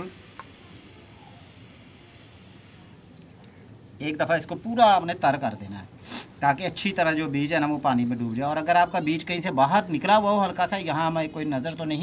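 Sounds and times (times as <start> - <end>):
water sprayer hissing: 0.0 - 3.2.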